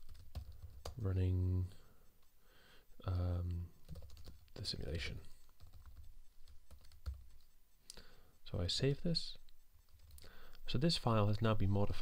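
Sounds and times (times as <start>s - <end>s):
typing on computer keyboard: 0.0s - 1.0s, 3.8s - 7.5s, 9.8s - 10.3s.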